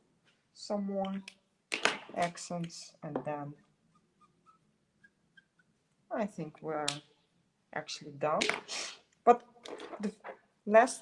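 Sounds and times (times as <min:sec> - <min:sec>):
marker nib squeaking on paper: 0:03.9 - 0:05.7.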